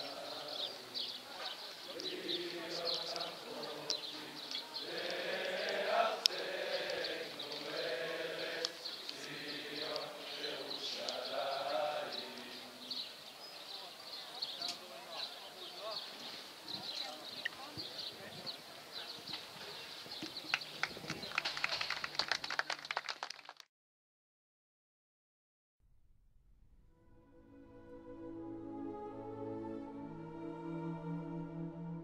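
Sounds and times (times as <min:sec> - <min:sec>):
group of voices singing: 0:00.0 - 0:13.3.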